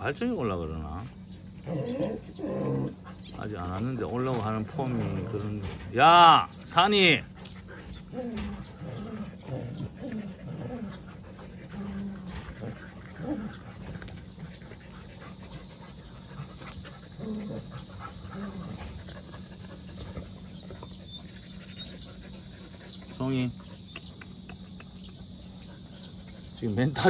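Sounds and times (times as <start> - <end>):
dogs panting: 0.2 - 27.0.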